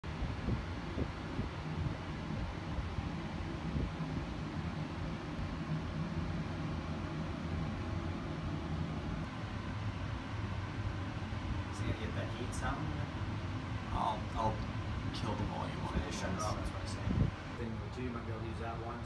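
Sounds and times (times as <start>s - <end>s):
low machine hum: 0.0s - 19.0s
noisy hiss: 0.0s - 19.0s.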